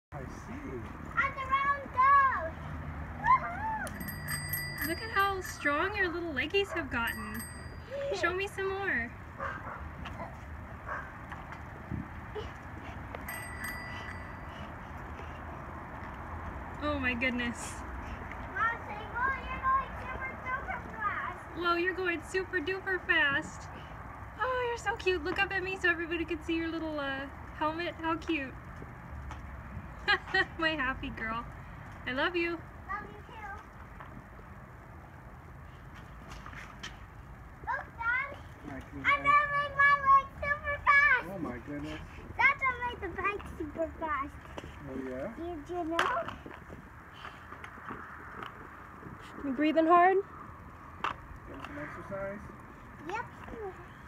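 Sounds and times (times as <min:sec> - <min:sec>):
tricycle wheels rolling on concrete: 0:00.2 - 0:54.0.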